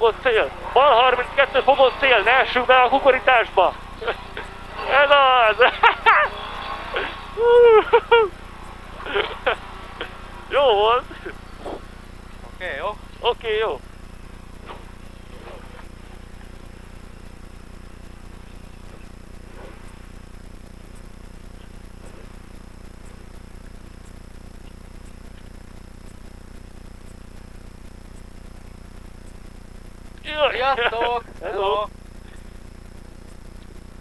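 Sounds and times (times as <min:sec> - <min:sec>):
car engine running at low revs: 0:00.0 - 0:34.0.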